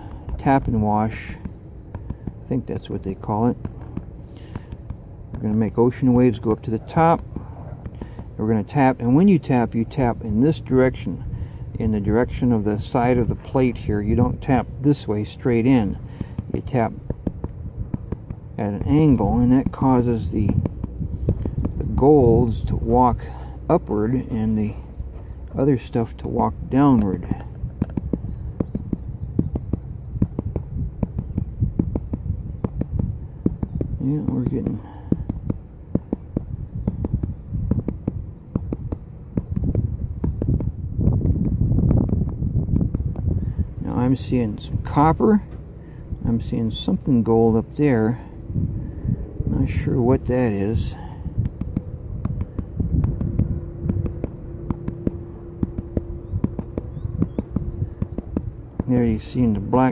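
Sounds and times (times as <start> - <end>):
hand tapping pan of wet sand: 0.0 - 11.2, 12.4 - 43.3, 50.2 - 59.9
low thuds: 0.0 - 59.9.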